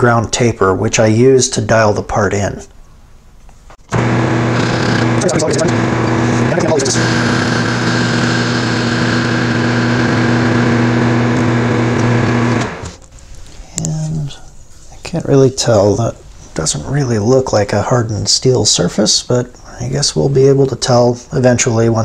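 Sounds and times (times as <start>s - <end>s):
metal lathe humming and hissing: 4.0s - 13.0s.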